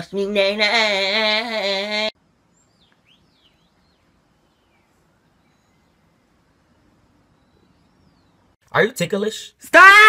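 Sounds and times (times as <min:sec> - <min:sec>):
faint bird-like chirps: 0:02.5 - 0:08.6.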